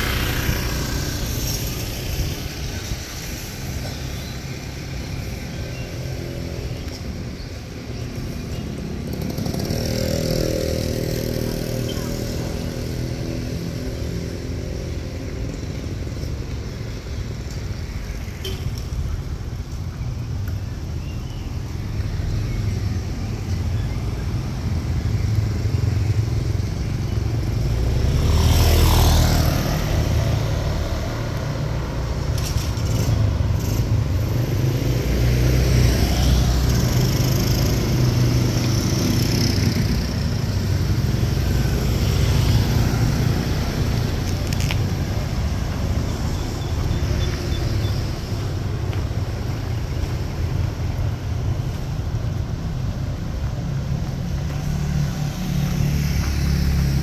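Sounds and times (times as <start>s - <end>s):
motorcycle engines: 0.0s - 57.0s
traffic low rumble: 0.0s - 57.0s.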